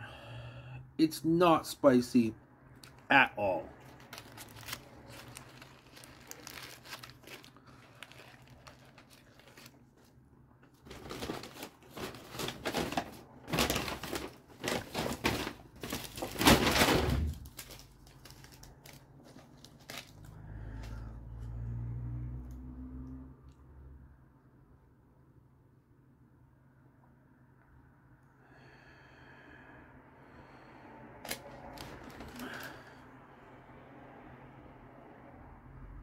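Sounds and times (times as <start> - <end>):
paper wrapper crinkling: 2.8 - 21.0, 31.3 - 33.0.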